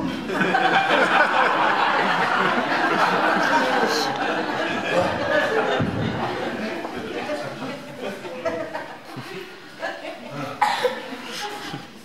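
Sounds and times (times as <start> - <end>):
indistinct voices: 1.6 - 12.0
person coughing: 10.3 - 11.2.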